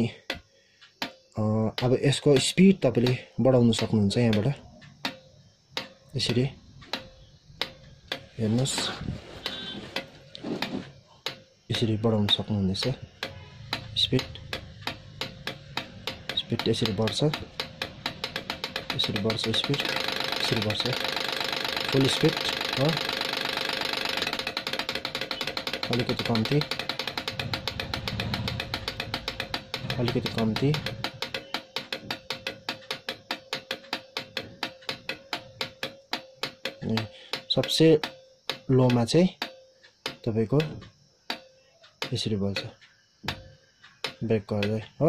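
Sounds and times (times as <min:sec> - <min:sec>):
light controller clicking: 0:00.2 - 0:45.0.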